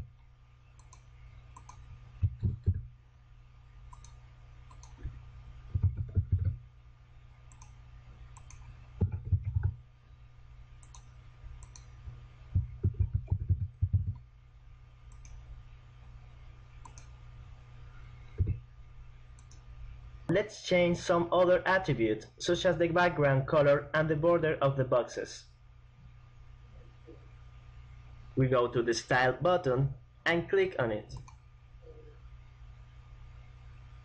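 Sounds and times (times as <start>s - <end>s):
low steady hum: 0.0s - 34.0s
mouse clicks: 0.8s - 2.8s, 3.9s - 5.2s, 7.5s - 9.7s, 10.8s - 12.0s, 15.1s - 15.4s, 16.8s - 17.2s, 19.4s - 19.6s, 31.2s - 31.4s
computer keyboard typing: 0.8s - 2.9s, 3.9s - 6.6s, 7.5s - 7.8s, 8.4s - 9.8s, 10.8s - 12.0s, 12.6s - 14.2s, 16.8s - 17.2s.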